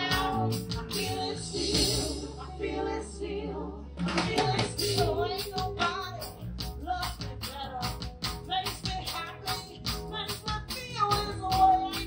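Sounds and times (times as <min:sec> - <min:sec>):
drums: 0:00.0 - 0:02.5, 0:04.0 - 0:12.0
female vocal group singing: 0:00.0 - 0:06.4
electric bass: 0:00.0 - 0:12.0
keyboard: 0:00.0 - 0:12.0.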